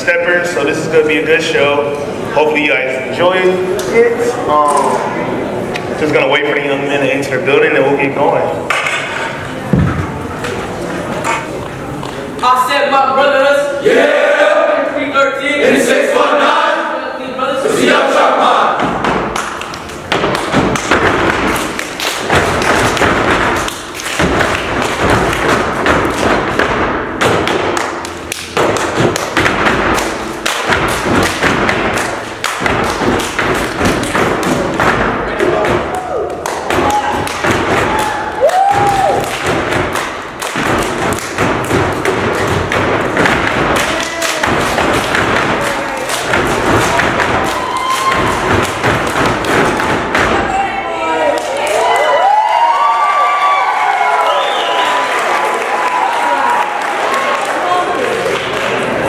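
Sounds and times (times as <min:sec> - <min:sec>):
hand claps: 0:19.0 - 0:50.4.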